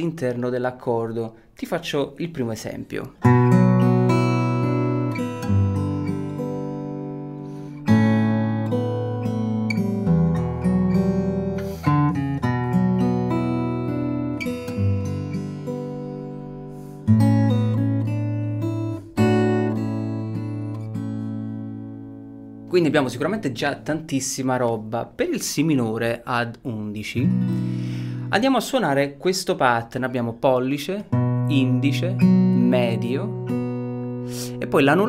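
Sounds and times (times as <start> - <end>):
fingerstyle acoustic guitar: 3.2 - 23.9, 27.1 - 28.4, 31.1 - 35.0.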